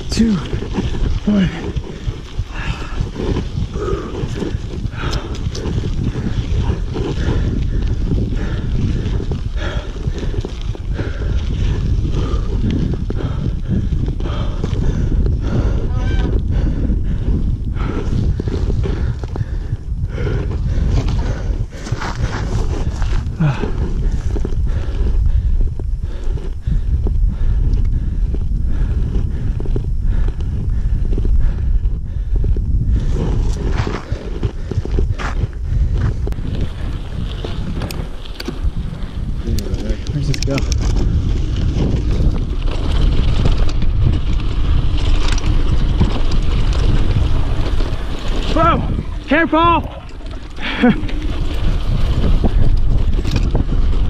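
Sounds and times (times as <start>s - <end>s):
bike rattling over bumps: 0.0s - 54.0s
wind buffeting microphone: 0.0s - 54.0s.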